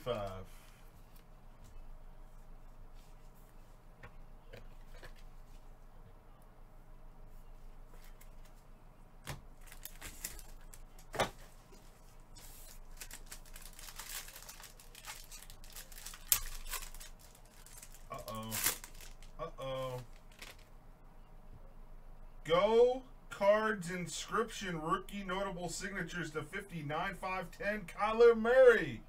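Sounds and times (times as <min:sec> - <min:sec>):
foil wrapping crinkling: 0:09.6 - 0:11.2, 0:12.3 - 0:20.7
sharp foil snaps: 0:13.0 - 0:19.3.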